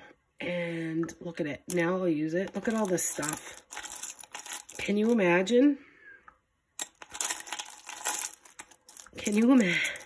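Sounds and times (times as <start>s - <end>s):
small metal objects jingling: 2.6s - 5.2s, 6.8s - 10.0s.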